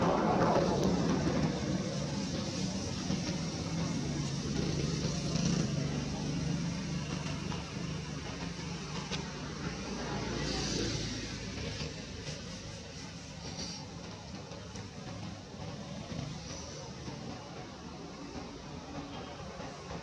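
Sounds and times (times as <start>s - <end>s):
background noise: 0.0s - 20.0s
vehicle engine hum: 0.0s - 20.0s.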